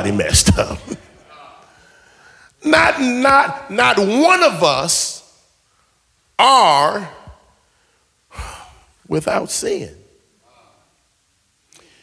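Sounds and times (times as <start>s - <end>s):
man speaking: 0.0s - 1.6s, 2.6s - 5.4s, 6.4s - 7.4s, 8.4s - 10.8s
man breathing in: 1.7s - 2.6s.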